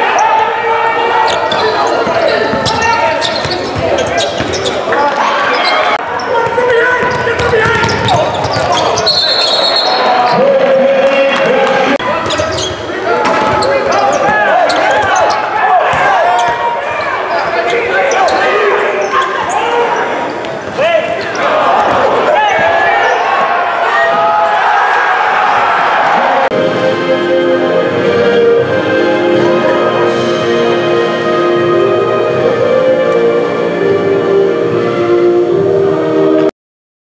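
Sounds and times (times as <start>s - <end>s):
players calling out: 0.0s - 26.5s
shoe squeaks and knocks: 1.3s - 6.0s, 7.1s - 10.1s, 12.2s - 21.4s.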